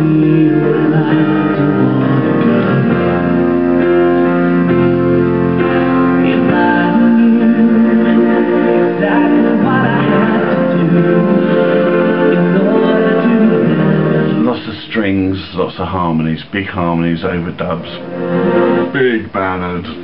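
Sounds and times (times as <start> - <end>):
pop ballad with harmonies: 0.0 - 14.8
piano: 0.0 - 14.9, 17.2 - 20.0.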